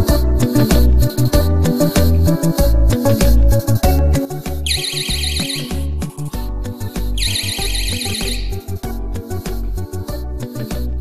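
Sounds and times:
background music with steady beat: 0.0 - 11.0
door alarm warbling siren: 4.7 - 6.0, 7.2 - 8.7.

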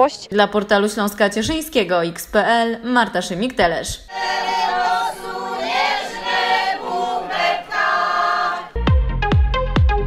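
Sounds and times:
women's choir singing: 4.1 - 8.8
electronic music with thumping beat: 8.8 - 10.0.

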